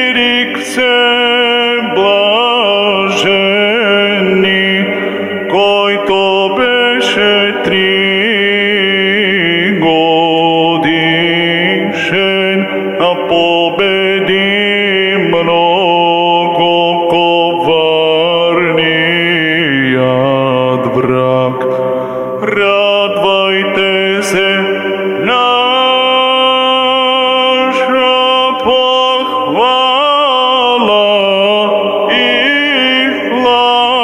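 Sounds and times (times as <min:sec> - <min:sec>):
man chanting a hymn: 0:00.0 - 0:34.0.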